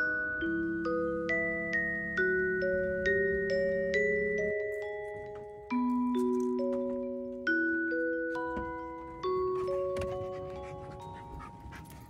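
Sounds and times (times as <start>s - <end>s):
glockenspiel-like background music: 0.0s - 12.0s
dog panting: 9.4s - 12.0s.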